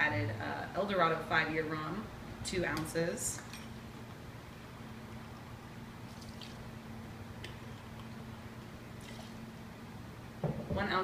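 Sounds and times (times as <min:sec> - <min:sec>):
low electrical hum: 0:00.0 - 0:11.0
liquid trickling into glass: 0:06.1 - 0:06.7, 0:09.0 - 0:09.4.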